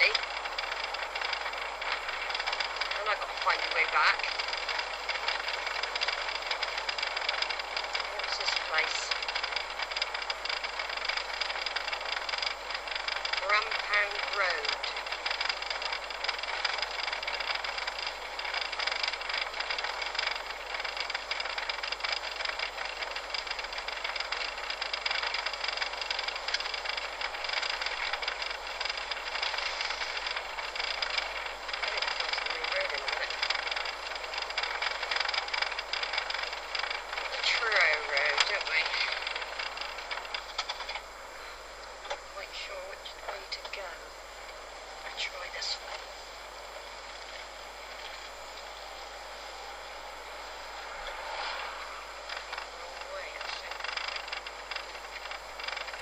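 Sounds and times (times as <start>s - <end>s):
person speaking: 0.0s - 0.4s, 2.9s - 4.9s, 8.0s - 9.3s, 13.3s - 15.1s, 31.8s - 33.5s, 37.3s - 39.3s, 42.2s - 44.1s, 45.0s - 46.2s, 52.7s - 54.0s
road and wind noise inside car: 0.0s - 56.0s.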